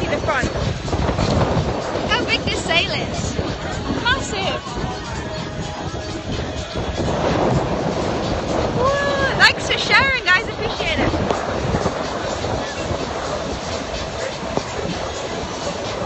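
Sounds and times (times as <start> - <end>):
wind buffeting microphone: 0.0 - 16.0
person whooping or laughing: 8.8 - 9.4.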